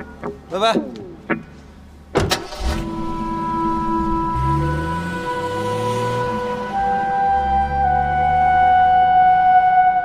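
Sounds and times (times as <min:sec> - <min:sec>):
car engine starting and idling: 0:02.0 - 0:09.0
car door slamming: 0:02.1 - 0:03.0
held music tone: 0:02.4 - 0:10.0.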